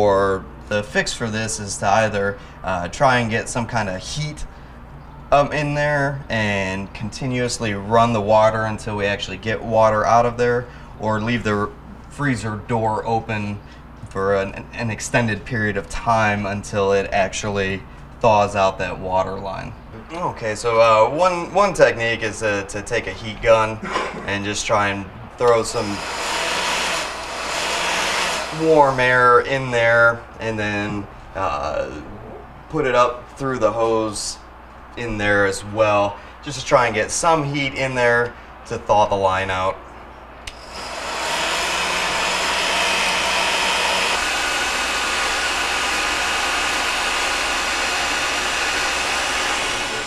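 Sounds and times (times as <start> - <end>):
heat gun running: 25.5 - 29.2, 40.5 - 50.0.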